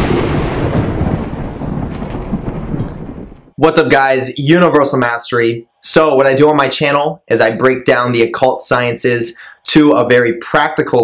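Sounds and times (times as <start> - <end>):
deep thunder-like rumble: 0.0 - 3.6
sudden boom: 0.0 - 3.6.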